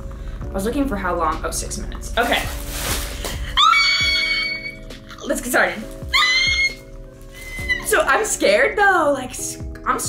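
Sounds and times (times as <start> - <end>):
soft background music: 0.0 - 10.0
woman squealing excitedly: 3.5 - 4.9, 6.1 - 8.0.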